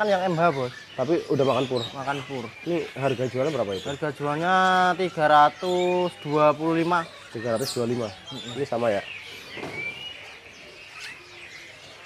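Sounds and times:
faint background birds: 0.0s - 12.0s
songbird chirps: 0.0s - 12.0s.

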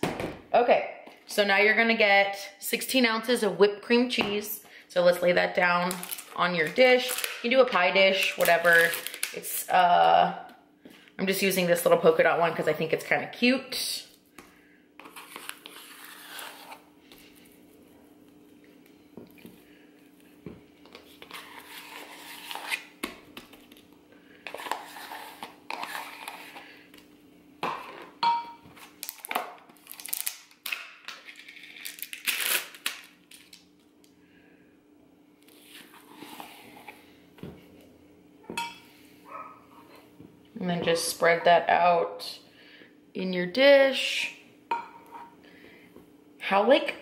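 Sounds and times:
faint steady hum: 0.4s - 47.0s
spatula scraping cream cheese: 15.0s - 16.9s, 21.0s - 22.9s, 24.5s - 26.7s, 35.5s - 37.0s.

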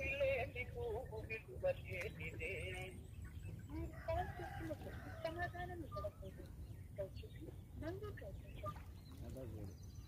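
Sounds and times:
chickens clucking: 0.0s - 9.5s.

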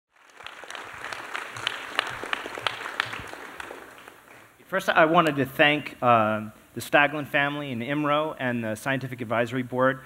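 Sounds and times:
audience applauding: 0.1s - 4.6s.

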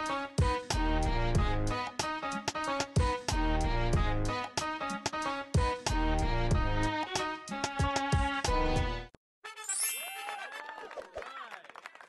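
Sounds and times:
ringing chime ding: 9.7s - 10.3s.

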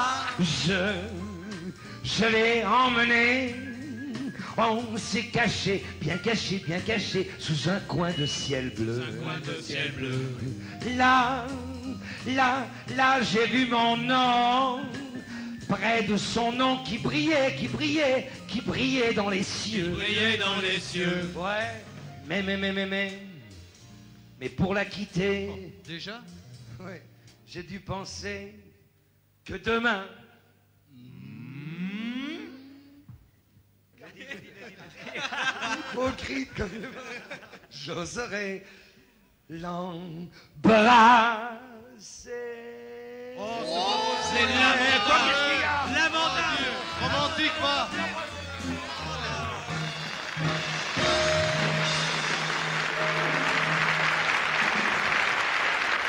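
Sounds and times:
men singing rising ooh: 8.2s - 22.0s, 40.7s - 52.0s
audience applauding: 49.0s - 56.0s.

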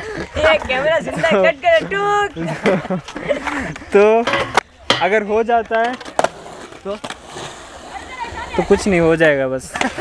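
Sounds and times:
skateboard wheels rolling on concrete: 0.0s - 10.0s.

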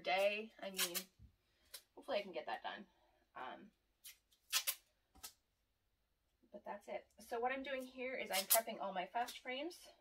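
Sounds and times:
masking tape ripping off roll: 0.6s - 1.1s, 4.0s - 5.4s, 8.3s - 8.6s.

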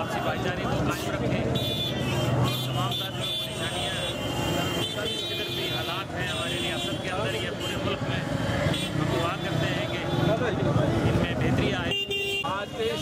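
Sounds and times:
murmur of street crowd: 0.0s - 13.0s
traffic: 0.0s - 13.0s
man speaking: 5.0s - 13.0s.

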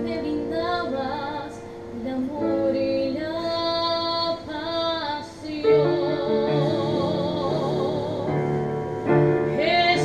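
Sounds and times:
woman singing: 0.0s - 8.8s, 9.4s - 10.0s.

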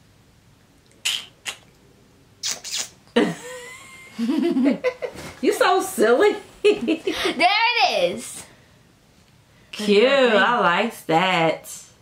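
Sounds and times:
person laughing: 3.1s - 5.3s, 6.7s - 7.4s.

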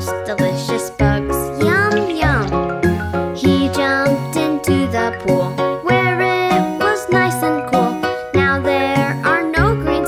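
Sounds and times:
bouncy nursery rhyme music: 0.0s - 10.0s.

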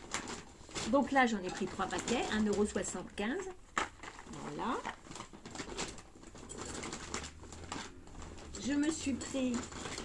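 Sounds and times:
packages knocking: 0.0s - 10.0s
shopping bag rustling: 0.0s - 10.0s.

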